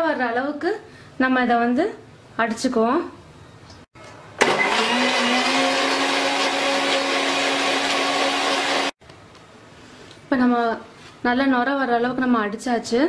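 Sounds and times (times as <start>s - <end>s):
electric blender running: 4.4s - 9.0s.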